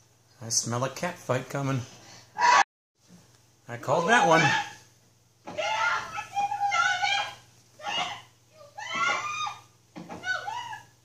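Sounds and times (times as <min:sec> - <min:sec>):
women shrieking: 0:02.4 - 0:02.6, 0:05.5 - 0:11.0.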